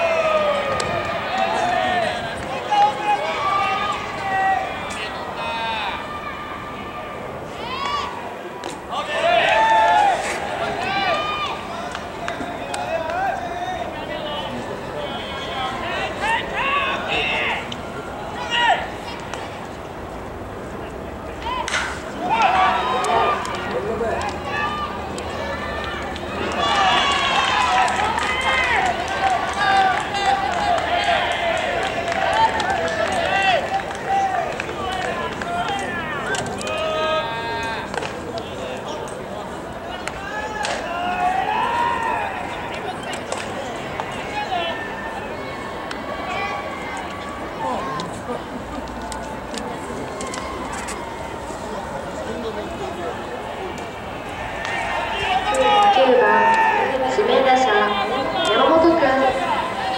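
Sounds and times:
voices shouting and cheering: 0.0s - 59.9s
voices shouting long calls: 53.0s - 59.9s.

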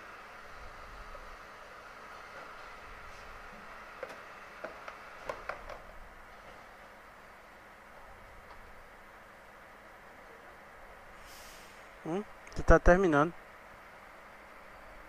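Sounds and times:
faint background hum: 0.0s - 15.0s
brief hiss: 11.1s - 12.1s.

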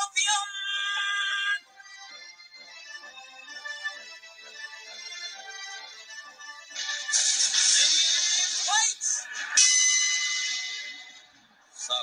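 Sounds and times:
television show music: 0.0s - 12.0s.

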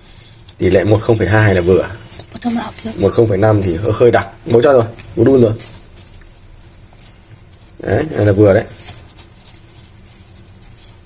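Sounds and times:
spoon scratching in mesh strainer: 5.3s - 11.0s.

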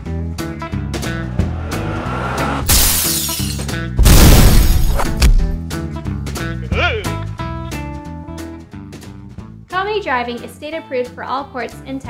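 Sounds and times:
loud crash: 0.9s - 5.6s
glass shattering effect: 1.9s - 5.6s.

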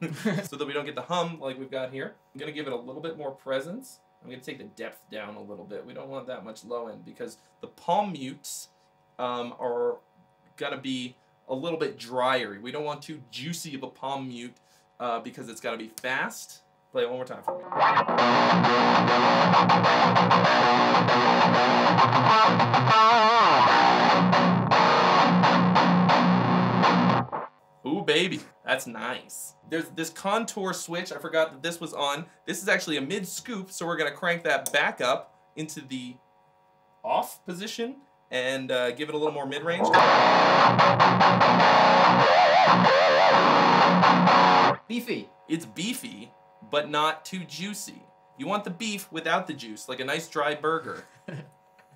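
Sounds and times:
distorted electric guitar riff: 17.5s - 27.6s, 39.7s - 44.9s.

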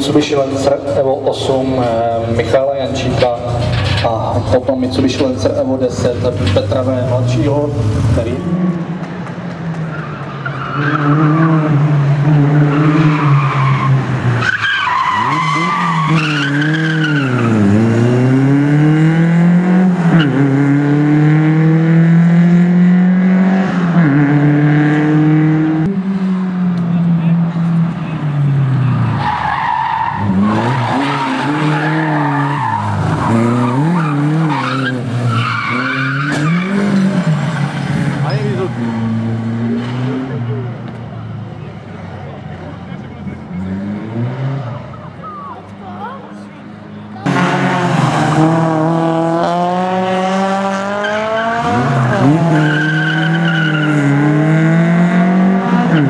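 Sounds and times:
rally car engine revving: 0.0s - 56.0s
tyres squealing: 28.9s - 39.1s.

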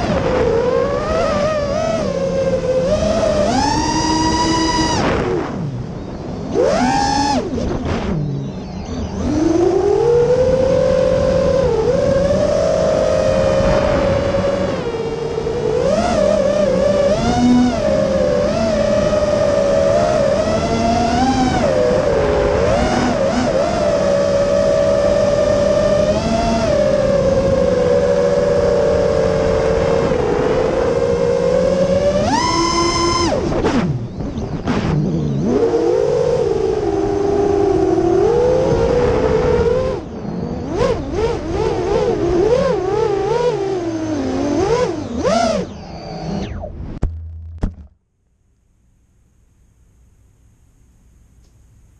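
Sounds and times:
quadcopter motors whining: 0.0s - 47.0s.

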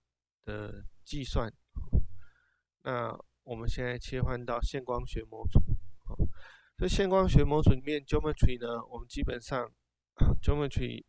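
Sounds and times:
man narrating: 0.4s - 1.6s, 2.9s - 5.6s, 6.8s - 11.0s.

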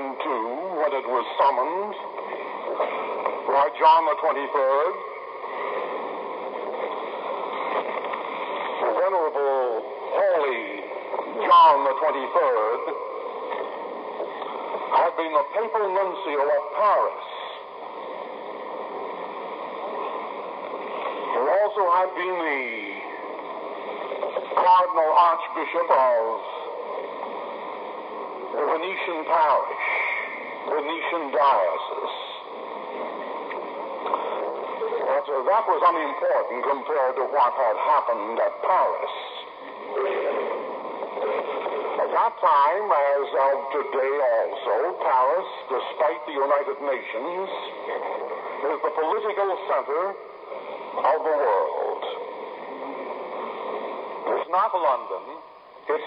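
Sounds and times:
recording hiss: 0.0s - 56.0s.

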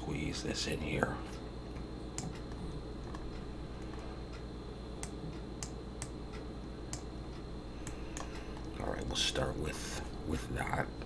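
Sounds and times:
low background hum: 0.0s - 11.0s
computer mouse clicks: 1.7s - 4.4s, 5.0s - 7.1s, 7.8s - 8.7s.

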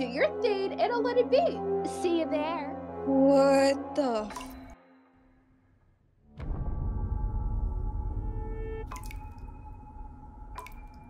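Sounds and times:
water drips plinking: 4.3s - 4.8s, 8.8s - 11.0s.

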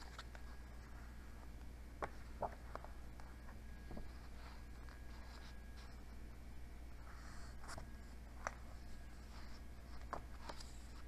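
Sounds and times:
book pages rustling: 0.0s - 6.2s, 7.0s - 11.0s.

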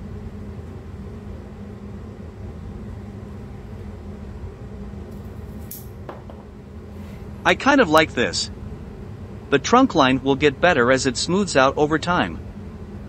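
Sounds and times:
low background hum: 0.0s - 13.0s.

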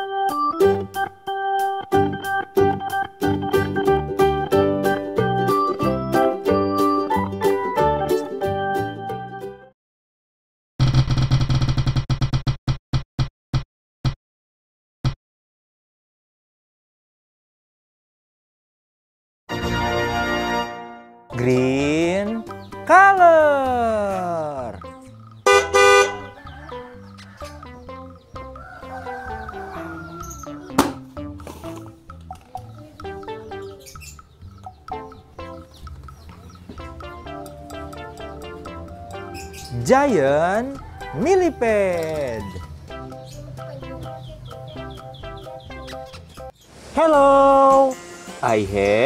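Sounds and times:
bouncy children's music: 0.0s - 9.7s, 19.5s - 49.0s
cartoon bus horn honking: 25.4s - 26.5s.

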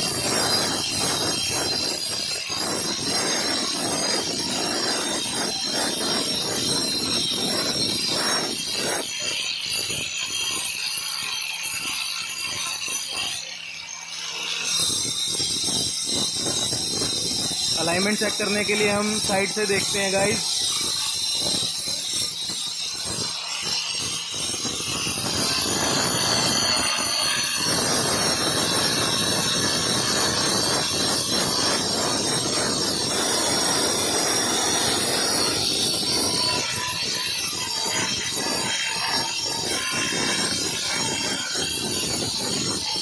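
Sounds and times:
angle grinder grinding stone: 0.0s - 43.0s.

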